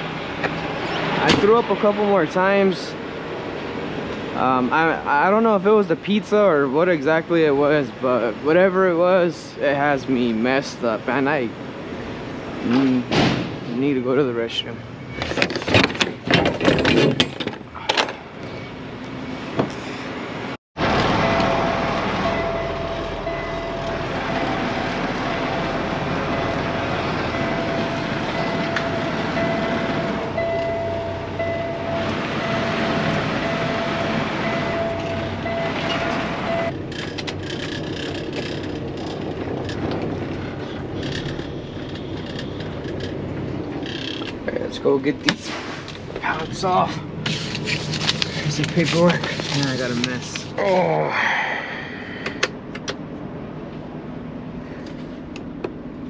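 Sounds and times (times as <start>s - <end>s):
knocks and clunks: 0.0s - 1.8s, 12.7s - 13.7s, 15.1s - 18.6s, 23.6s - 44.5s
truck engine running: 20.3s - 50.6s.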